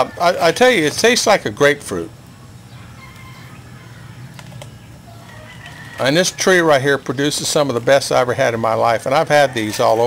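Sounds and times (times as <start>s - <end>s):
distant bird calls: 2.3s - 7.3s.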